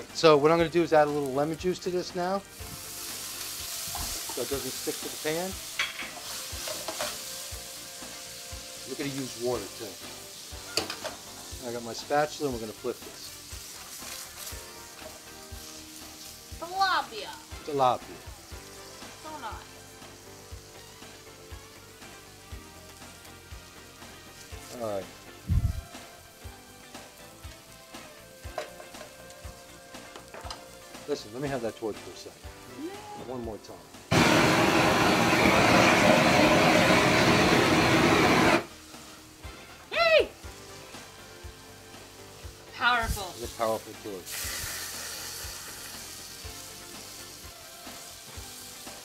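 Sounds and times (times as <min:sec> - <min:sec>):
fish sizzling in frying pan: 0:00.0 - 0:49.0
blowtorch hissing: 0:01.2 - 0:30.5, 0:34.0 - 0:39.4, 0:40.4 - 0:49.0.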